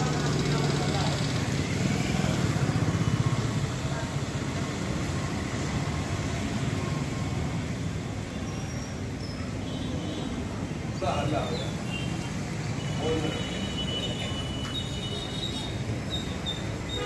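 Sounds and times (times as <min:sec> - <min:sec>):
street traffic noise: 0:00.0 - 0:17.0.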